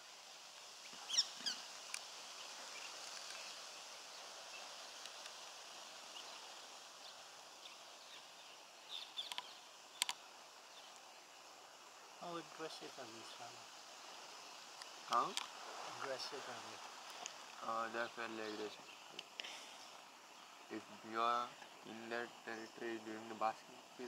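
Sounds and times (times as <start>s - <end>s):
short high bird calls: 1.0s - 1.7s.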